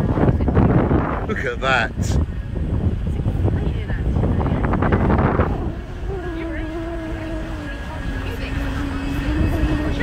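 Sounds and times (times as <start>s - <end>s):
boat engine low rumble: 0.0s - 10.0s
wind buffeting microphone: 0.0s - 10.0s.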